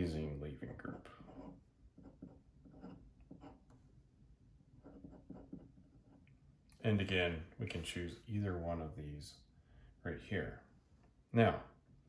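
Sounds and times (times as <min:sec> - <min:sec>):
pen scratching on paper: 0:00.0 - 0:03.7, 0:04.8 - 0:06.3.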